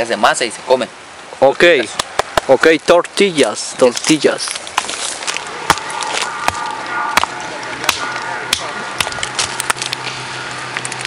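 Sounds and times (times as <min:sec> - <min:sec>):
faint voices: 0:05.1 - 0:10.9.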